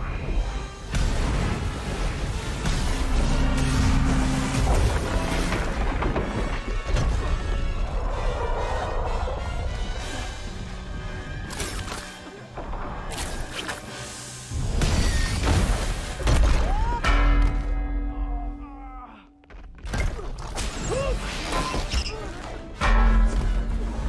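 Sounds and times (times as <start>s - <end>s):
dramatic film score: 0.0s - 24.0s
debris crashing and smashing: 0.9s - 8.1s.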